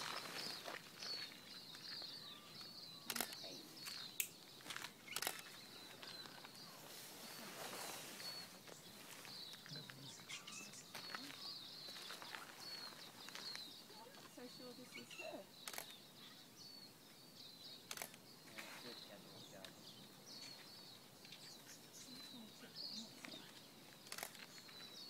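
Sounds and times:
small bird chirping: 0.0 - 25.0
sharp clicks: 3.1 - 6.2, 15.6 - 16.0, 17.9 - 18.2, 24.0 - 24.5.

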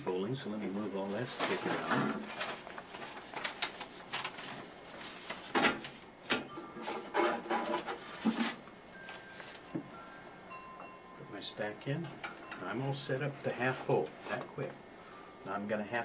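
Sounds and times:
paper rustling: 1.0 - 6.0.

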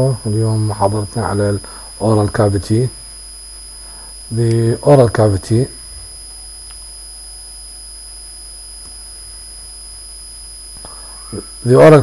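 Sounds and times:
high-pitched whine: 0.0 - 12.0
low electrical hum: 0.0 - 12.0.

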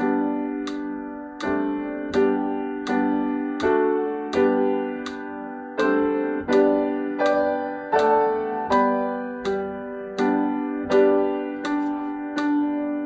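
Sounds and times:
piano playing hymn chords: 0.0 - 13.0.

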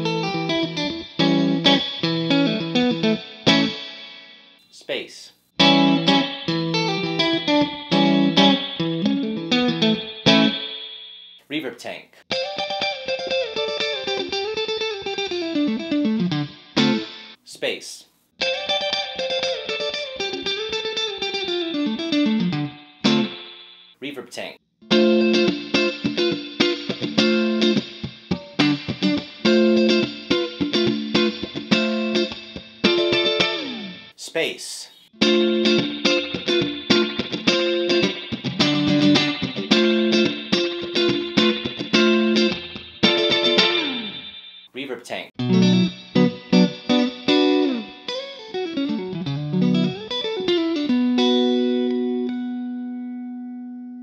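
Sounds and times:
electric guitar with spring reverb: 0.0 - 4.6, 5.6 - 11.0, 12.3 - 17.4, 18.4 - 23.7, 24.9 - 34.1, 35.2 - 54.0.

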